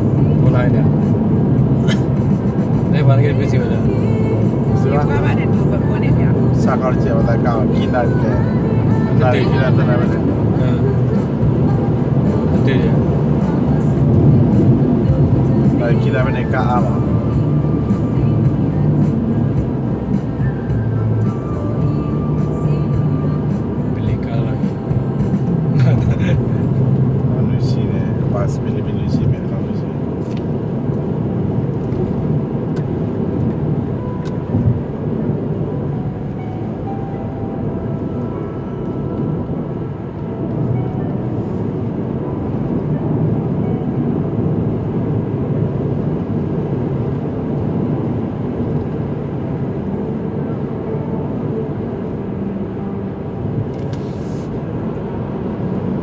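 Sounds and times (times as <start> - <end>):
car cabin road and engine noise: 0.0 - 56.0.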